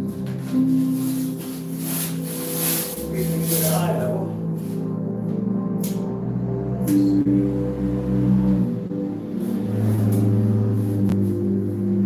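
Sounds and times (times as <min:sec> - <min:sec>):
background music with sustained tones: 0:00.0 - 0:12.0.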